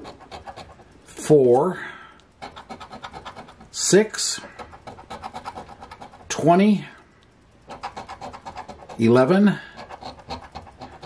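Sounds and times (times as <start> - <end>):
coin scraping lottery ticket: 0.0 - 0.8, 2.4 - 6.6, 7.7 - 11.0.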